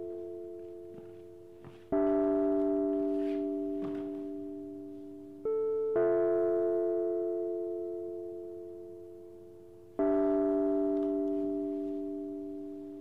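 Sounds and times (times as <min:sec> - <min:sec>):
slow keyboard chords: 0:00.0 - 0:13.0.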